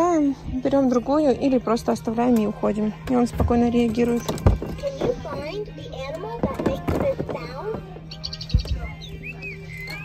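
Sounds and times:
toy electronic melody with tweets: 8.1s - 10.0s.

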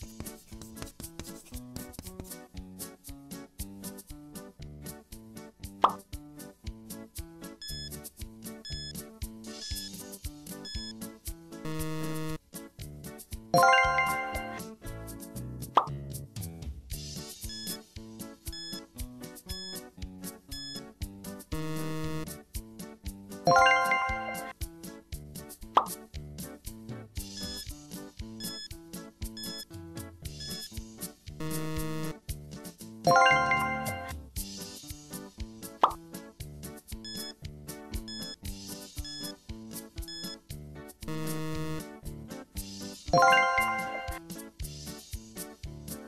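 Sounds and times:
light background music: 0.0s - 46.0s
short plop: 5.8s - 6.0s
ringing chime with upward swoop: 13.6s - 14.6s, 23.5s - 24.5s, 33.1s - 34.1s, 43.2s - 44.2s.

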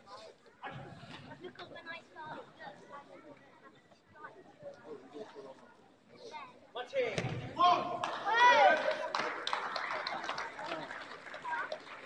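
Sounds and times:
high yell: 7.6s - 9.0s
people shouting in a hall: 7.6s - 9.2s.

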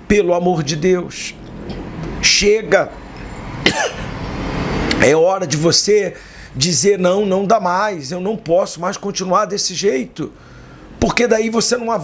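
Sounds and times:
man speaking: 0.0s - 1.4s, 2.2s - 3.0s, 5.0s - 10.3s, 11.0s - 12.0s
man coughing or grunting: 3.6s - 4.2s.

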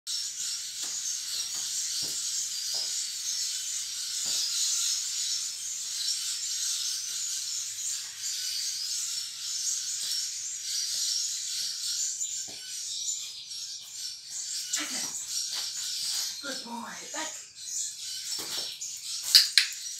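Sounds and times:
high-pitched chirping chorus: 0.1s - 19.9s.

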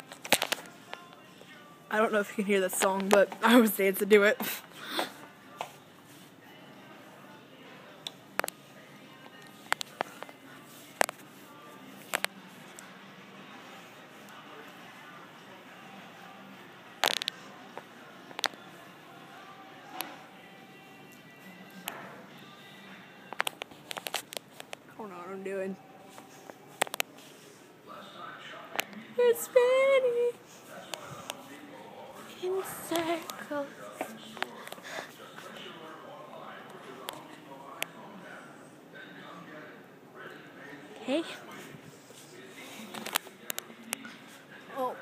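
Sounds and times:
faint background music: 0.0s - 45.0s
faint indistinct voices: 0.0s - 45.0s.

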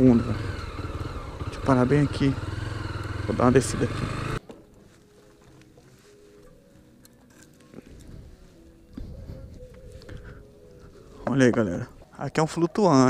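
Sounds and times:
motorcycle engine idling: 0.0s - 4.4s
faint distant music: 3.3s - 13.0s.

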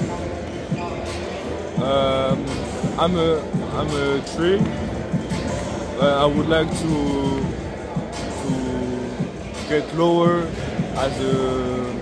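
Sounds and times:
faint voices in a hall: 0.0s - 12.0s.

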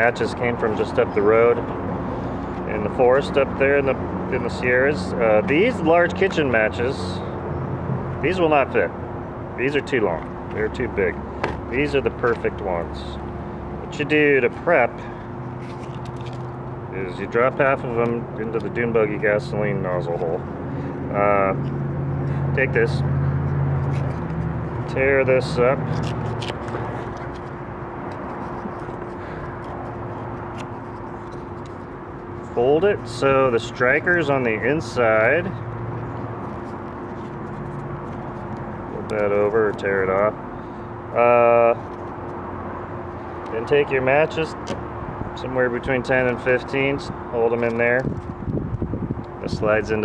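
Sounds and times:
steady low hum: 0.0s - 50.0s.

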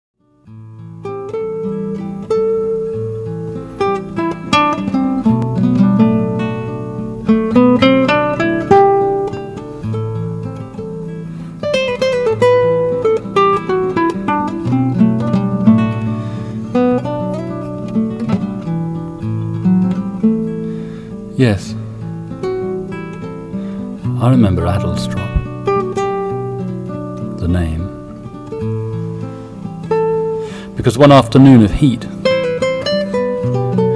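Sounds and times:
fingerstyle classical guitar: 0.2s - 33.9s.

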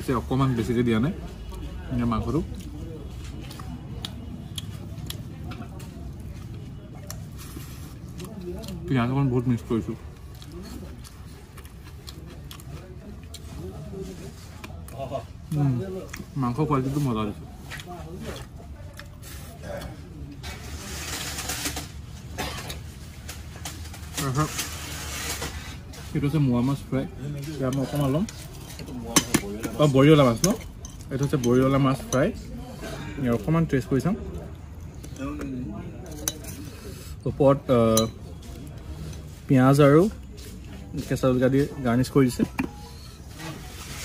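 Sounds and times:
murmur of voices: 0.0s - 44.0s.

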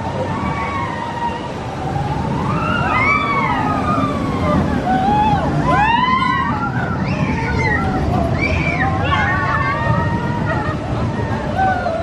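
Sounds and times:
roller coaster train on track: 0.0s - 12.0s.

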